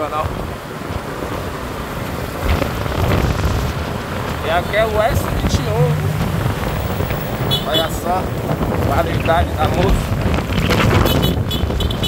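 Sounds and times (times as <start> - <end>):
road noise: 0.0 - 12.0
wind on microphone: 0.3 - 12.0
motorcycle engine: 5.0 - 8.6.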